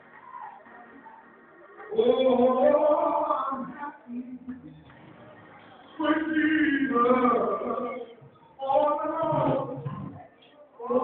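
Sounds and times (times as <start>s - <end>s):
man chanting: 6.0s - 9.9s.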